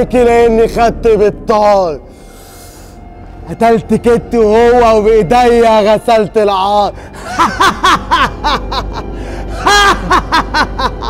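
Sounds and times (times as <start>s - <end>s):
dramatic background music: 0.0s - 11.0s
man laughing villainously: 7.2s - 11.0s.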